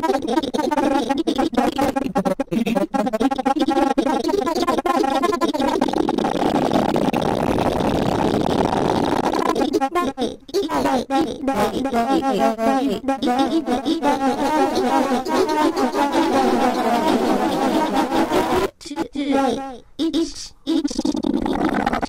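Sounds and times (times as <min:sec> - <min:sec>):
stuttering pitch-shifted voice fragments: 0:00.0 - 0:22.0.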